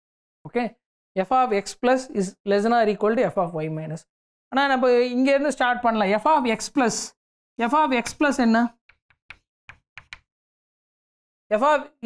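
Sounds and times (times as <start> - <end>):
chalk tapping on chalkboard: 8.9 - 10.3.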